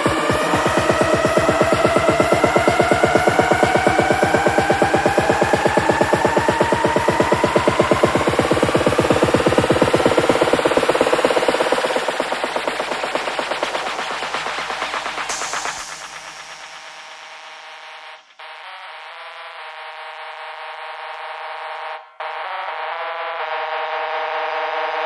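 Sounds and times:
deep bass: 0:00.0 - 0:17.1
rising synth tones: 0:00.0 - 0:18.3
fast pulsing drum roll: 0:00.0 - 0:18.4.

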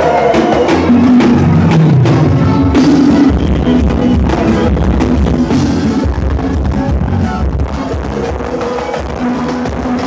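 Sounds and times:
drum kit beat: 0:00.0 - 0:10.0
live band playing amplified music: 0:00.0 - 0:10.0.

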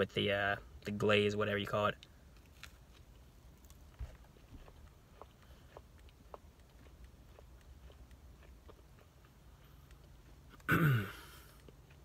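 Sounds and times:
low steady hum: 0:00.0 - 0:12.0
crunchy chewing: 0:02.0 - 0:12.0.

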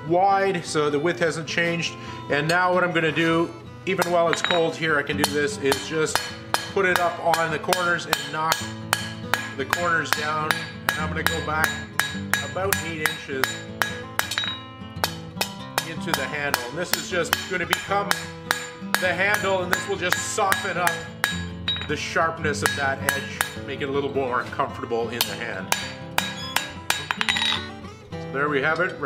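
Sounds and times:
background music: 0:00.0 - 0:29.0
hammer striking steel on anvil: 0:04.0 - 0:23.6, 0:25.2 - 0:27.7.

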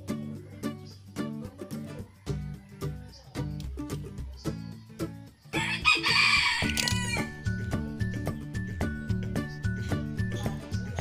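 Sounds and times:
guitar music: 0:00.0 - 0:11.0
rooster crowing: 0:05.6 - 0:07.4.

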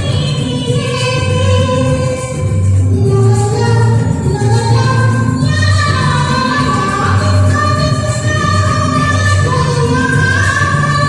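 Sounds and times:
karaoke backing track: 0:00.0 - 0:11.0
woman singing: 0:00.0 - 0:11.0.

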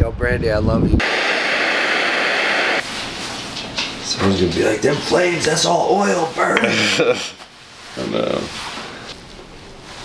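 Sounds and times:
torch lighter jet hissing: 0:01.0 - 0:02.9.

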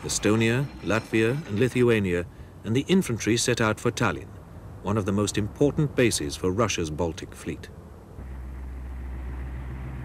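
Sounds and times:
low machine rumble: 0:08.2 - 0:10.0.

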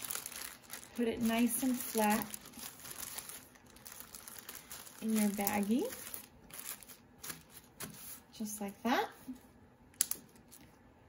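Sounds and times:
plastic bag rustling: 0:00.0 - 0:08.3.

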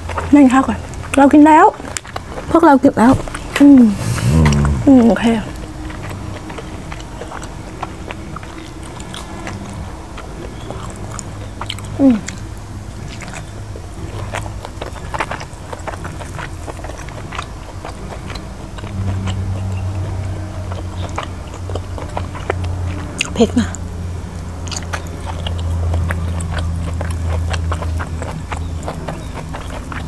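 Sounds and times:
mouth chewing wet food: 0:00.0 - 0:30.0
steady low hum: 0:00.0 - 0:30.0
person saying eh: 0:03.8 - 0:05.5.

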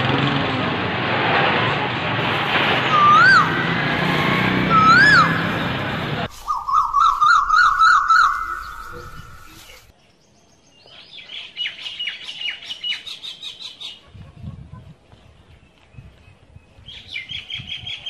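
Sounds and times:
rapid high bird chirps: 0:06.3 - 0:09.9
bird warbling trill: 0:06.4 - 0:09.8.

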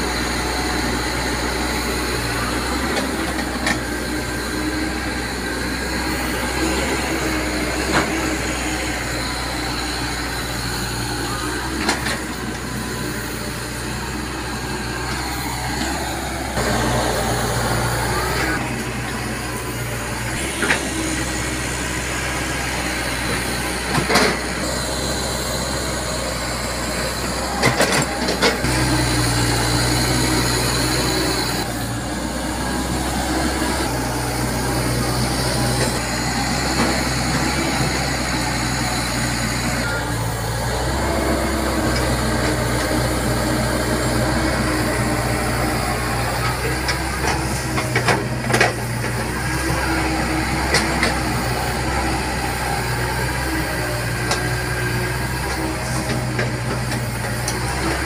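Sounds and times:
excavator diesel engine running: 0:00.0 - 0:58.0.

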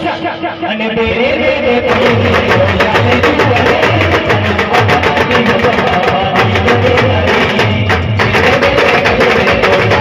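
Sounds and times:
fast drum beat: 0:01.8 - 0:10.0.

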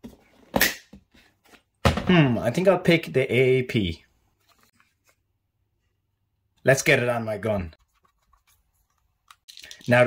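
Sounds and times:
person speaking: 0:09.5 - 0:10.0.

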